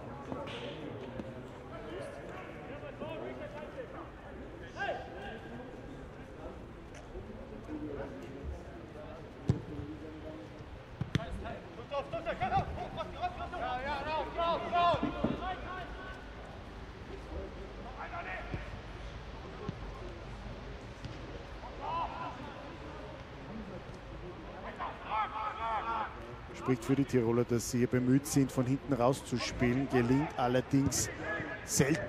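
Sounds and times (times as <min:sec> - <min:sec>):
low stadium background: 0:00.0 - 0:32.0
ball being kicked: 0:11.0 - 0:11.4
footballers shouting: 0:11.2 - 0:16.4, 0:24.6 - 0:27.3.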